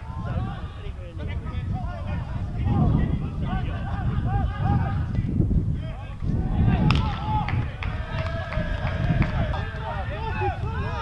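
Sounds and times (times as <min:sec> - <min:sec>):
people shouting: 0:00.0 - 0:01.0, 0:05.8 - 0:11.0
wind rumble on microphone: 0:00.0 - 0:11.0.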